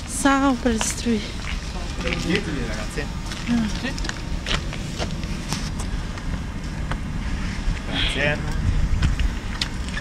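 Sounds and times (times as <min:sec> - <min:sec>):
wind buffeting microphone: 0:00.3 - 0:10.0
footsteps on paving: 0:00.7 - 0:07.0.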